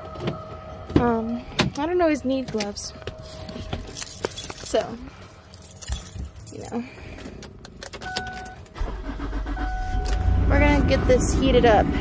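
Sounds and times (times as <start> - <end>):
car engine starting and running: 7.1 - 12.0.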